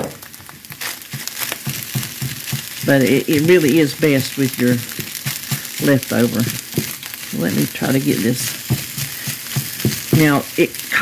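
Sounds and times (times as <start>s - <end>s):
frying sizzle: 0.0s - 11.0s
spatula scraping skillet: 0.2s - 11.0s.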